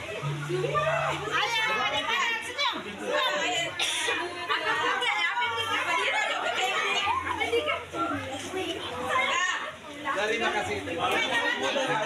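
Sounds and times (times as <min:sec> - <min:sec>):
children and women talking: 0:00.0 - 0:12.0.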